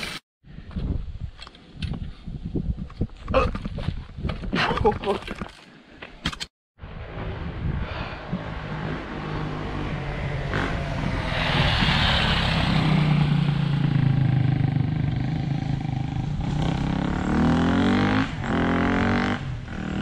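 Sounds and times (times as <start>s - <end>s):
motorcycle engine revving: 6.9s - 20.0s.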